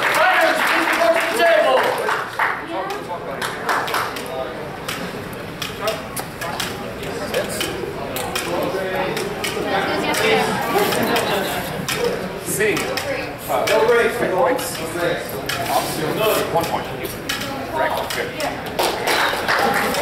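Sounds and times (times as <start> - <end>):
indistinct chatter of people: 0.0 - 20.0.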